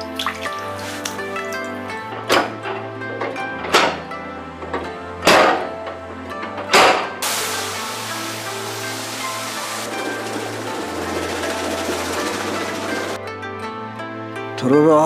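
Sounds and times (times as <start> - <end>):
background music: 0.0 - 15.0
machine heavy thumps: 7.2 - 13.2
water churning in a vat: 7.2 - 13.2.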